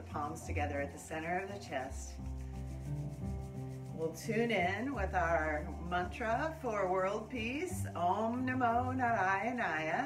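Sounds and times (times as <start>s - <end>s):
hands rubbing together: 0.0s - 6.5s.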